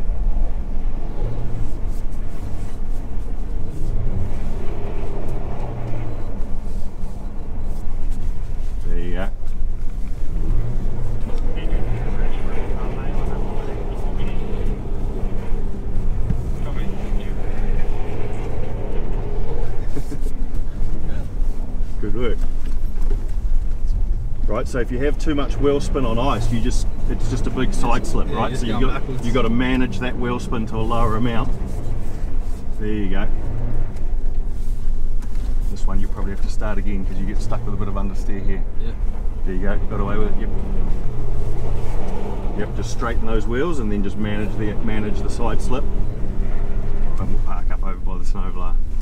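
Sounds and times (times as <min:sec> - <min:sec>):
car engine revving: 0:00.0 - 0:49.0.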